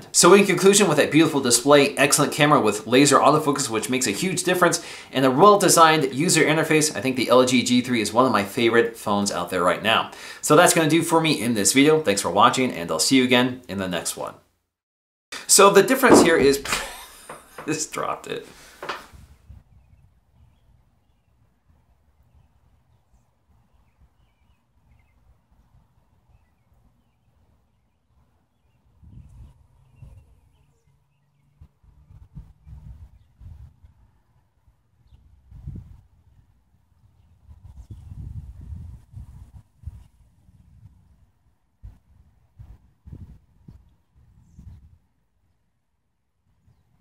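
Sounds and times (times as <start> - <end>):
wind buffeting microphone: 19.1 - 20.8, 29.0 - 30.5, 31.6 - 34.0, 35.2 - 36.4, 37.0 - 45.0.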